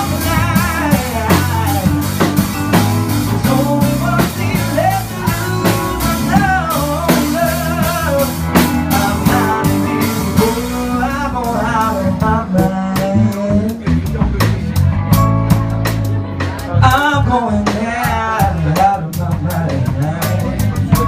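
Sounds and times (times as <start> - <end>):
man singing: 0.0 - 14.9, 16.6 - 21.0
drum kit: 0.0 - 21.0
electric guitar: 0.0 - 21.0
keyboard: 0.0 - 21.0.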